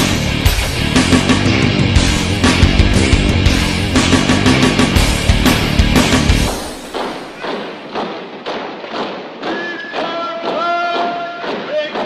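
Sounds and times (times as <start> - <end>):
heavy rock music: 0.0 - 7.4
steady thudding beat: 0.0 - 12.0.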